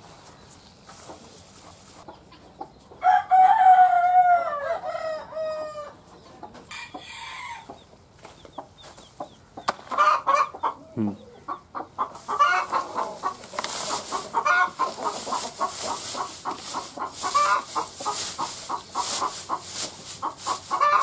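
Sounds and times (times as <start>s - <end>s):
dry straw rustling: 0.0s - 2.1s, 12.1s - 21.0s
chickens clucking: 0.0s - 21.0s.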